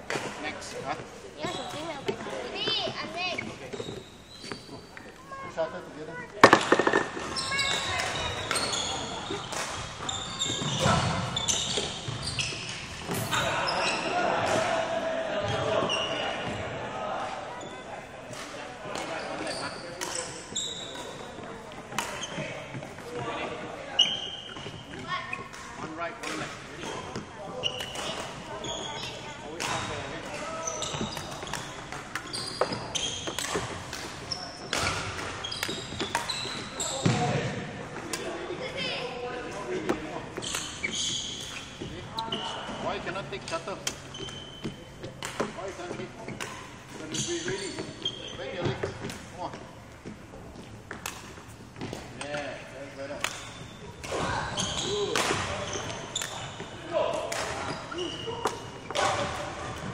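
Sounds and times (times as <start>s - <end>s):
indistinct voices in hall: 0.0s - 59.9s.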